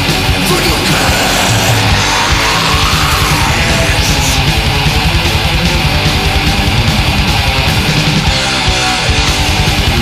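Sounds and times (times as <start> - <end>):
thrash metal music: 0.0 - 10.0.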